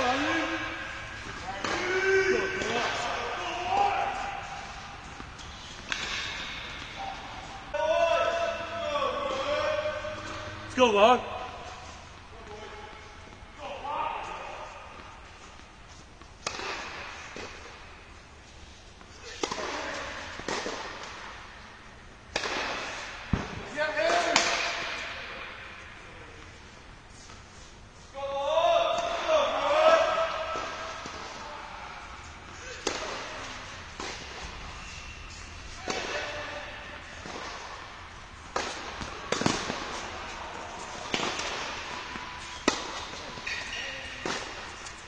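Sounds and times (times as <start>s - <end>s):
racket striking tennis ball: 0.0s - 7.7s, 14.8s - 17.9s, 19.0s - 21.5s, 22.3s - 25.8s, 32.6s - 34.9s, 35.6s - 45.0s
tennis ball bouncing on court: 4.2s - 7.2s, 38.5s - 43.6s.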